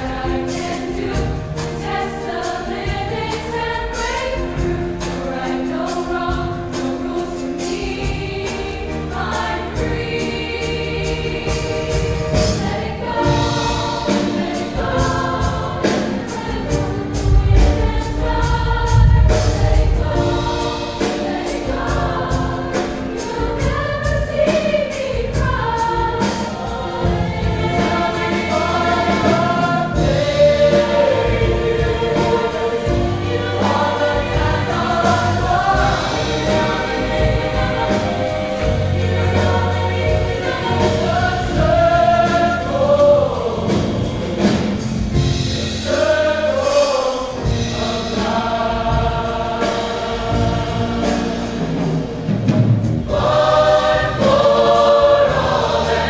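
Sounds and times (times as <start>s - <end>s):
choir singing: 0.0s - 56.0s.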